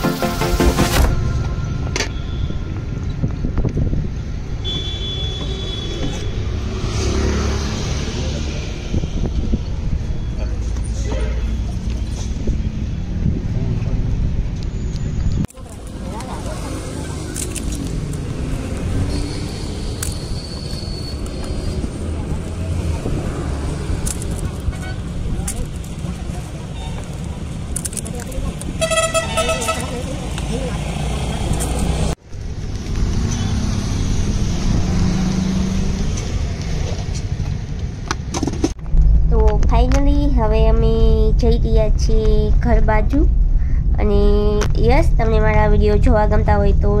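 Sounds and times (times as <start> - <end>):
road traffic rumble: 0.0 - 47.0
vehicle engine passing: 6.0 - 14.5, 15.5 - 37.7.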